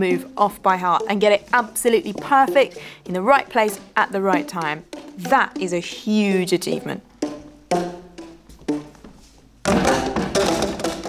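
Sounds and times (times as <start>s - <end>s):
tuned tubes struck by hand: 0.0s - 11.0s.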